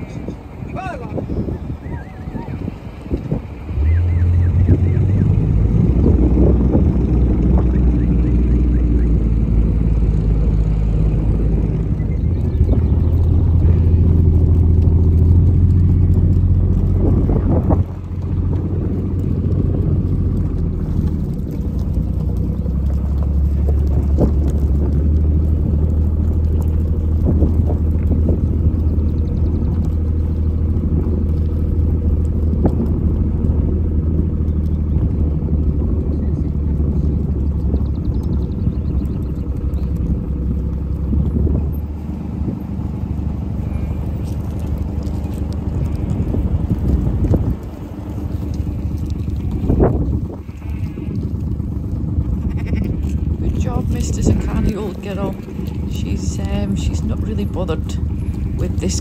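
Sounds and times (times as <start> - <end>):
vehicle engine running slowly: 0.0 - 59.0.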